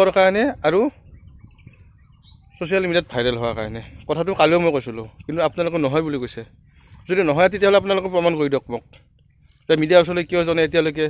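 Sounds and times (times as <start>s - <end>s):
man talking: 0.0s - 1.1s, 2.6s - 11.0s
faint bird chirps: 0.6s - 7.2s.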